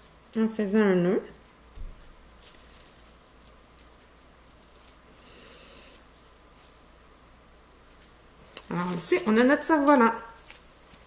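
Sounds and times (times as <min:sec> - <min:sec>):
plastic bag rustling: 0:00.0 - 0:07.1, 0:07.8 - 0:11.0.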